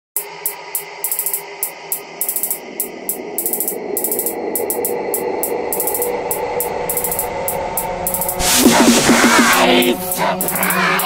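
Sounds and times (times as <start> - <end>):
synth drone: 0.2 - 11.0
glitchy static crackle: 8.2 - 10.8.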